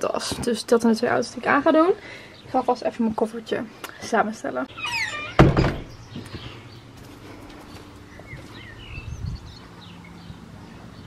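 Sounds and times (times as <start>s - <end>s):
door thunk: 5.0s - 6.0s.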